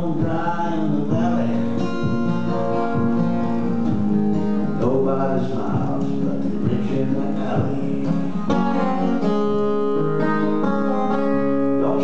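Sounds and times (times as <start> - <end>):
man singing folk song: 0.0 - 9.9, 11.2 - 12.0
strummed acoustic guitar: 0.0 - 12.0.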